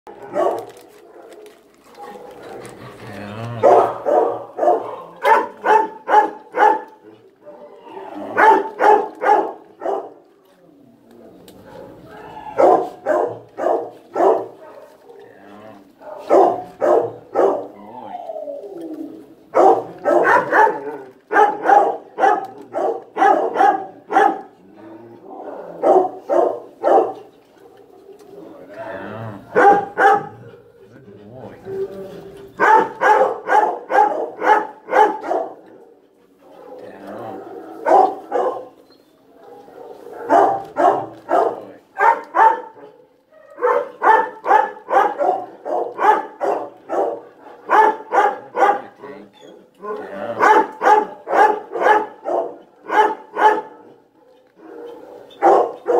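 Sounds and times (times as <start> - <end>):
dog barking: 0.1 - 0.8, 3.6 - 7.0, 8.3 - 10.2, 12.6 - 15.2, 16.0 - 17.7, 19.5 - 24.5, 25.6 - 28.0, 29.5 - 30.5, 32.6 - 35.6, 37.8 - 38.8, 39.4 - 48.9, 50.4 - 55.9.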